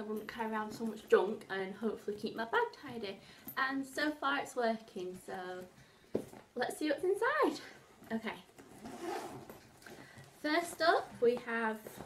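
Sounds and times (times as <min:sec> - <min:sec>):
backpack zipper opening: 0:08.6 - 0:09.9.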